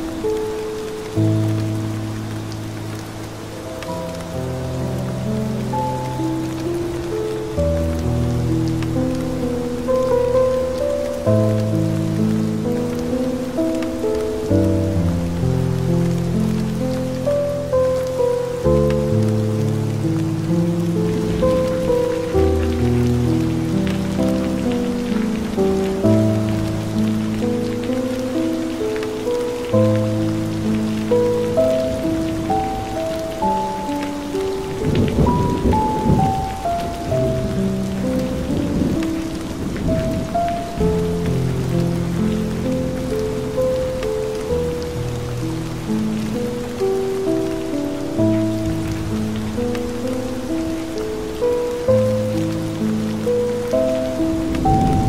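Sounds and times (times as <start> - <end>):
calm music with held chords: 0.0 - 55.0
steady rain: 0.0 - 55.0
thunder rumbling: 20.0 - 27.9, 30.6 - 43.9, 47.9 - 55.0.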